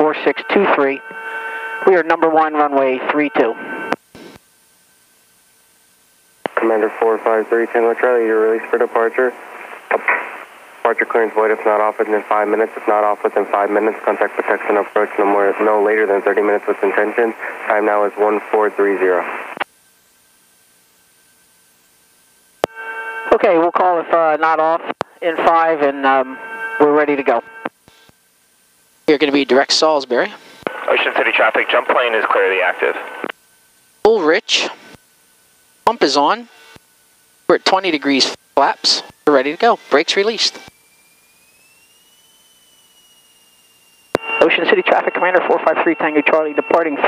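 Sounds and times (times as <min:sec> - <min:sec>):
high-pitched whine: 0:00.0 - 0:04.4, 0:22.6 - 0:28.1, 0:37.5 - 0:47.0
intercom hiss: 0:00.0 - 0:04.4, 0:06.5 - 0:19.6, 0:22.6 - 0:27.7, 0:29.1 - 0:33.3, 0:34.0 - 0:35.0, 0:35.8 - 0:36.6, 0:37.5 - 0:40.7, 0:41.3 - 0:47.0
steady buzzing hum: 0:00.0 - 0:47.0.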